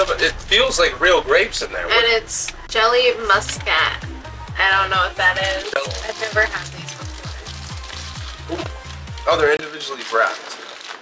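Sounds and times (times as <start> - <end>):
music with bass and kick beat: 1.9 - 9.6
plastic pouch crackling: 5.3 - 11.0.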